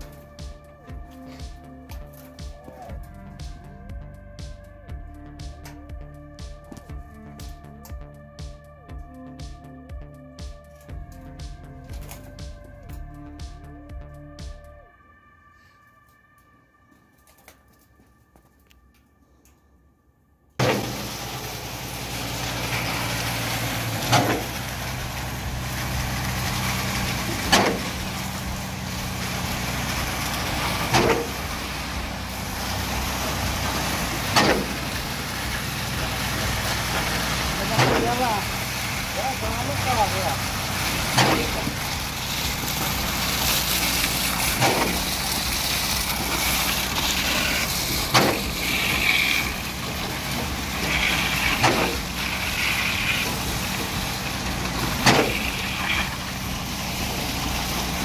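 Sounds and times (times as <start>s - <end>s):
concrete pump running: 20.6s - 58.0s.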